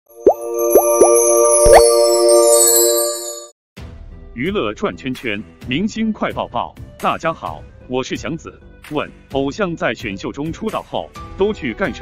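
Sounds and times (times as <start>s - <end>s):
bright sustained musical chord: 0.1s - 3.5s.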